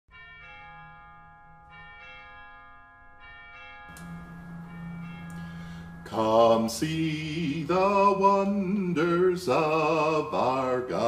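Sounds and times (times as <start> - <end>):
bells ringing: 0.1 - 8.8.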